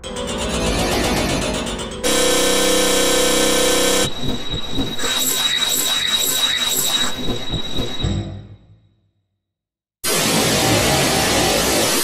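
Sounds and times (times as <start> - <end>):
dense electronic piano music: 0.0 - 5.1.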